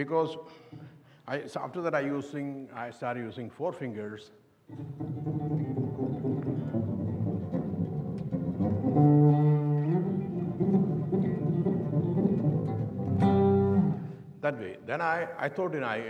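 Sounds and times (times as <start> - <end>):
electric bass fast plucking: 5.0 - 14.0.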